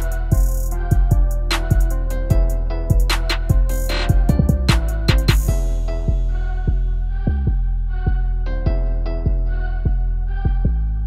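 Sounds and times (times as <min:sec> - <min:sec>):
deep sustained bass: 0:00.0 - 0:11.0.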